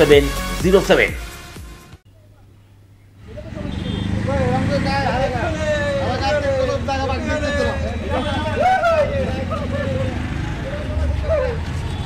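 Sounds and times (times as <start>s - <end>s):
people shouting and chattering: 3.2s - 12.0s.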